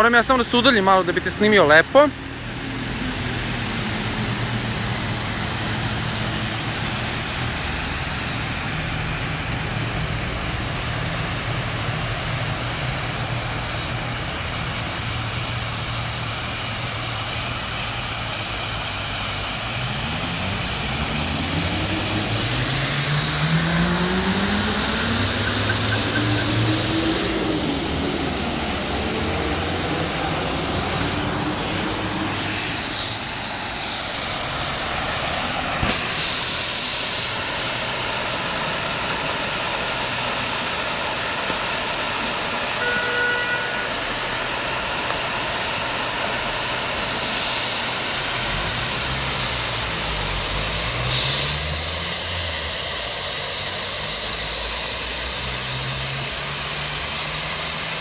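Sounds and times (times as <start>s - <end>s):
engines running: 0.0s - 58.0s
fountain water splashing: 0.0s - 58.0s.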